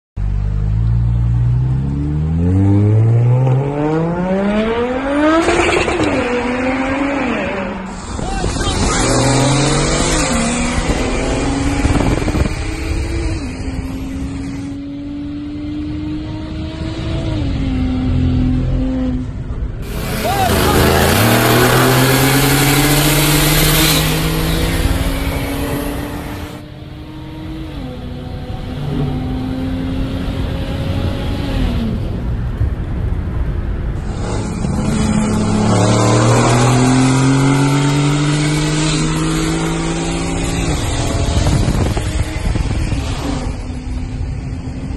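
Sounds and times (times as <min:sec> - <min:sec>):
car engines accelerating hard: 0:00.3 - 0:44.9.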